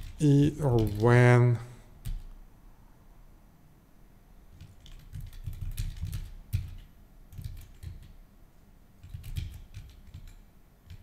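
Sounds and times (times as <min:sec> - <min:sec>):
computer keyboard typing: 0:00.0 - 0:01.4, 0:02.0 - 0:02.4, 0:04.5 - 0:08.2, 0:09.0 - 0:11.0.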